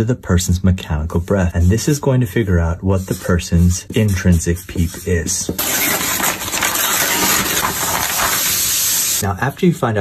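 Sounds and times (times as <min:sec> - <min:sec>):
paper rustling and crinkling: 0:04.8 - 0:09.2.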